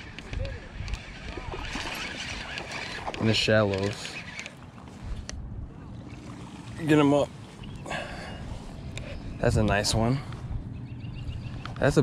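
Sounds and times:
wind rumble on microphone: 0.0 - 4.2, 4.9 - 12.0
fishing reel being cranked: 0.0 - 4.6.

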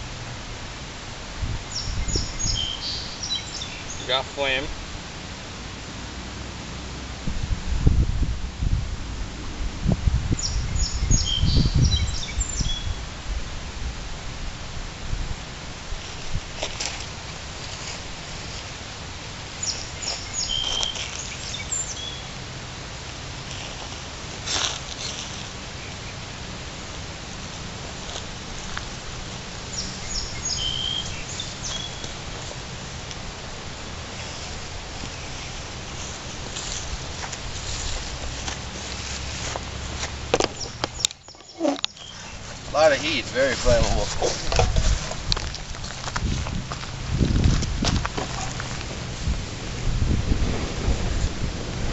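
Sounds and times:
low rumbling buffets: 0.0 - 16.6, 25.6 - 51.9
songbird chirping: 1.7 - 4.7, 10.4 - 13.0, 19.6 - 22.4, 29.7 - 32.5, 40.4 - 44.3.

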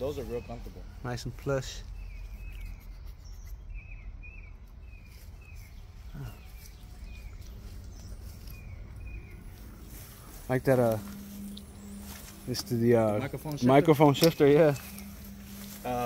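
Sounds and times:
small bird chirping: 0.0 - 16.0
low rumble: 5.8 - 16.0.

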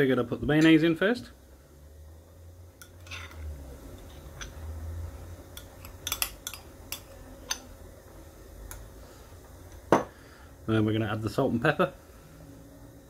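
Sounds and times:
spoon scraping glass bowl: 2.8 - 4.5.

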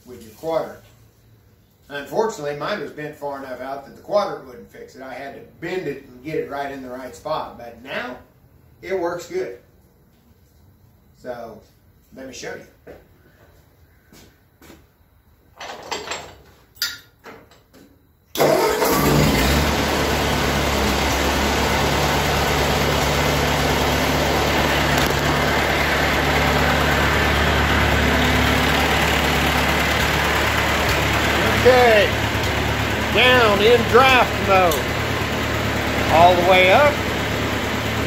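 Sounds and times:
tractor engine starting and idling: 18.3 - 38.0.

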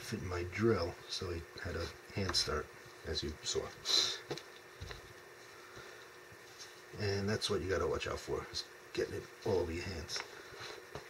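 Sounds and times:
soft handling noises: 1.6 - 7.0.

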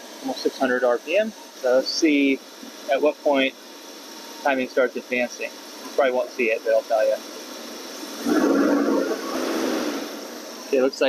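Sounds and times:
engine revving: 8.1 - 10.4.

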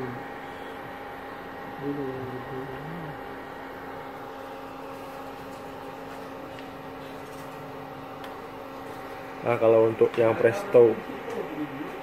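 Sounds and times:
cooling fan running: 0.0 - 12.0
electrical hum with tones: 0.0 - 12.0
low murmured voice: 1.8 - 3.3.

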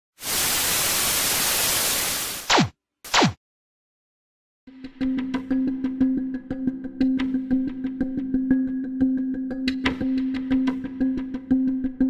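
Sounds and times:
tv static hiss: 0.2 - 2.5.

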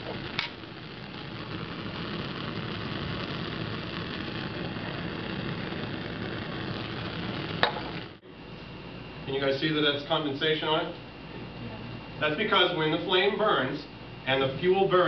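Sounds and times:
gas flame hissing: 0.0 - 15.0.

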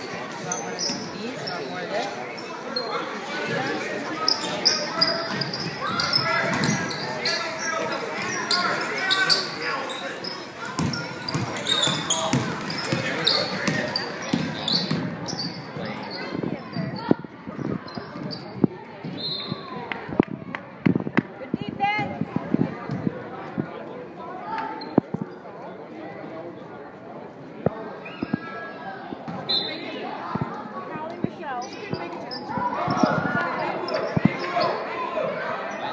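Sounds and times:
basketball bouncing on hardwood floor: 12.3 - 13.0.

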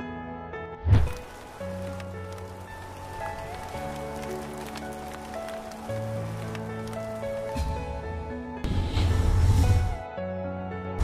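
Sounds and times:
slow long-held music notes: 1.1 - 11.0.

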